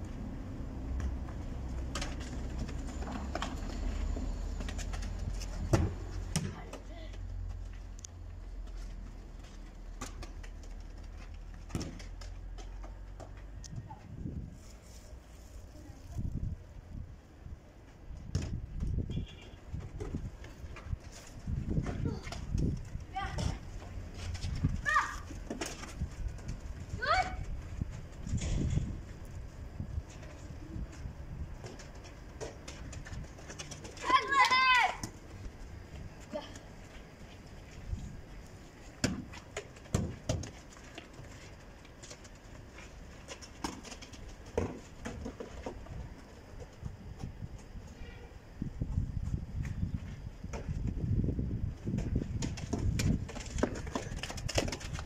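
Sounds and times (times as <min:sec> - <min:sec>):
football kicks thudding: 0:05.6 - 0:06.8, 0:39.0 - 0:40.5
children shouting: 0:34.0 - 0:35.0.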